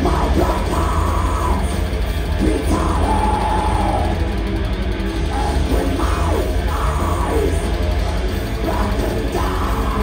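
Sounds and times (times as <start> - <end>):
metal band playing live: 0.0 - 10.0.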